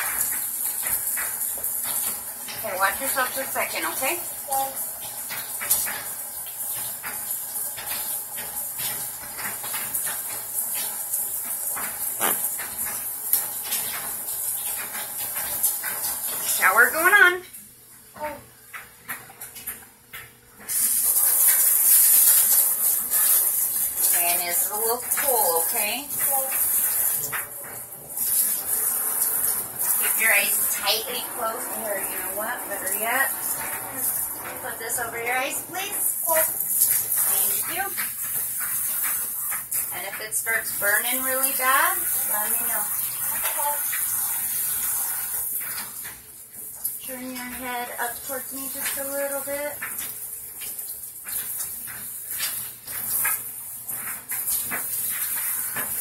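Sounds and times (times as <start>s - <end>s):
shower water spraying onto hair: 0.0s - 17.5s, 18.2s - 56.0s
indistinct voices talking: 30.0s - 36.5s.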